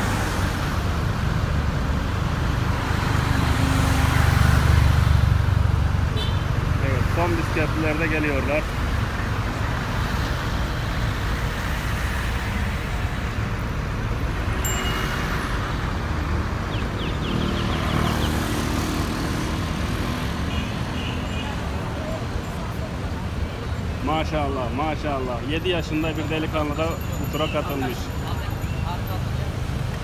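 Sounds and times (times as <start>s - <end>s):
rumble of passing cars: 0.0s - 30.0s.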